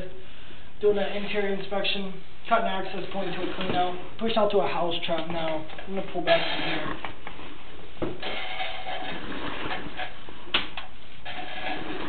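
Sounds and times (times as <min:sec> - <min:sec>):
cable reel whirring and rattling: 0:08.2 - 0:10.2, 0:11.2 - 0:12.0.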